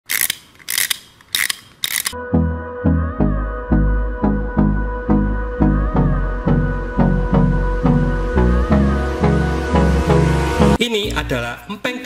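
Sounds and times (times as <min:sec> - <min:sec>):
toy wind-up ratcheting clicks: 0:00.0 - 0:02.2.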